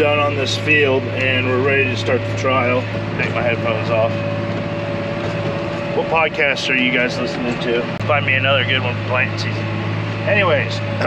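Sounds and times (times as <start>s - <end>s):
thin steady whine: 0.0s - 11.0s
tractor engine running: 0.0s - 11.0s.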